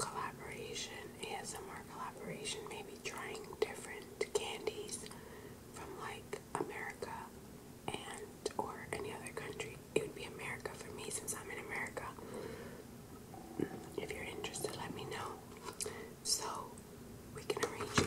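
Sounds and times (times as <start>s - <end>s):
woman whispering: 0.0s - 5.1s, 5.7s - 7.3s, 7.9s - 12.2s, 13.5s - 16.8s, 17.4s - 18.0s.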